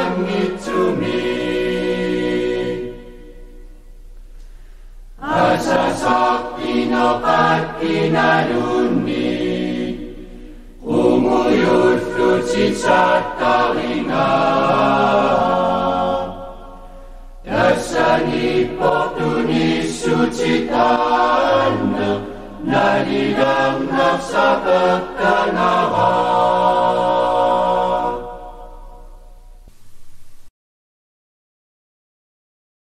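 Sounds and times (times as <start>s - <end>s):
slow chant-like singing: 0.0s - 4.1s, 5.2s - 29.7s.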